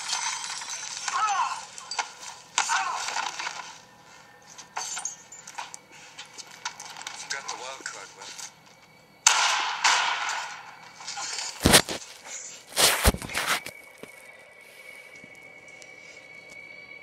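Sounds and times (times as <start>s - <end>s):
steady high ringing tone: 3.4s - 17.0s.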